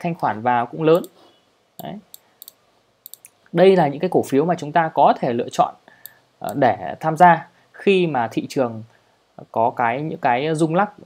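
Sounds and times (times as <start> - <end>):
computer mouse clicks: 1.0 - 1.2, 1.8 - 3.4.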